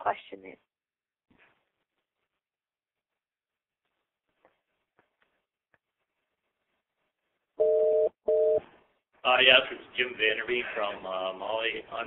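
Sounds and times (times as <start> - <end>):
telephone busy signal: 7.6 - 8.6.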